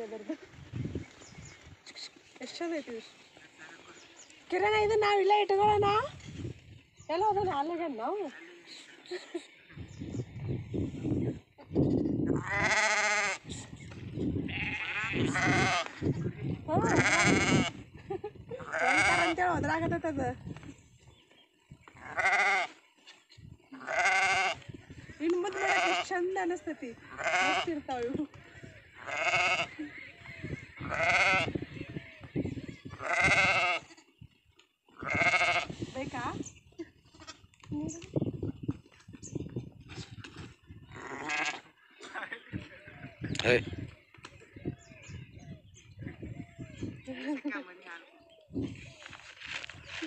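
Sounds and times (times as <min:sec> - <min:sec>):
sheep and goats bleating: 0:11.9 - 0:13.5, 0:14.3 - 0:17.9, 0:18.5 - 0:19.7, 0:21.9 - 0:22.8, 0:23.7 - 0:24.7, 0:25.3 - 0:34.2, 0:34.9 - 0:35.8, 0:37.0 - 0:37.5, 0:40.8 - 0:43.0.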